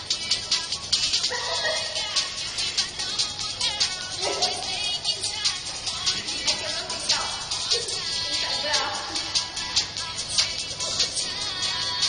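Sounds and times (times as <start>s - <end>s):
music with fast beat from phone: 0.0s - 12.0s.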